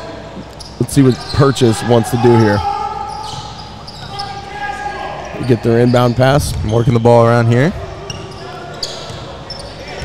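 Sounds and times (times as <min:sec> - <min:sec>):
shoe squeaks: 0:00.3 - 0:10.0.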